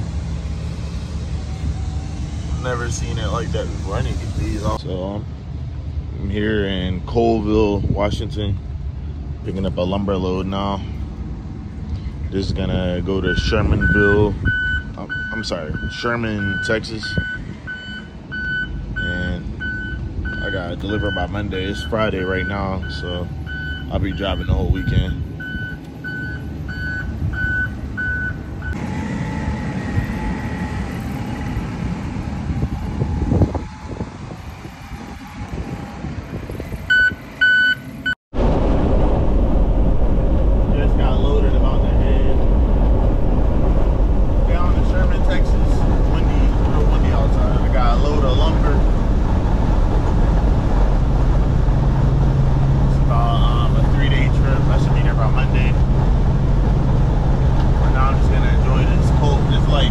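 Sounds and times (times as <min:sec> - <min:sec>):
truck engine and road noise: 0:00.0 - 0:59.9
backup alarm beeping: 0:13.2 - 0:28.8, 0:36.9 - 0:38.2.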